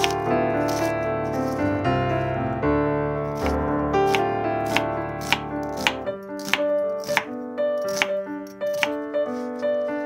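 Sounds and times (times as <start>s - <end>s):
knife chopping onion on board: 0.0s - 0.9s, 3.3s - 9.8s
piano music: 0.0s - 10.0s.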